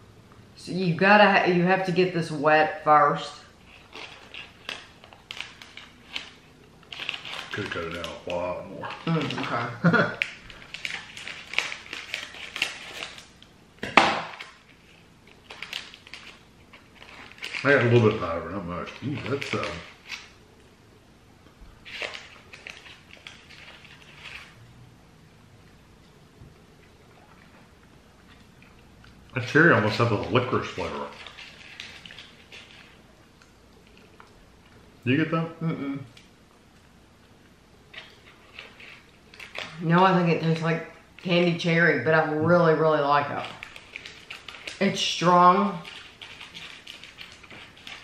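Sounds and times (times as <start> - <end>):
plastic wrapper crinkling: 3.5 - 20.6, 21.8 - 24.6, 28.2 - 34.8, 37.9 - 41.8, 42.6 - 48.0.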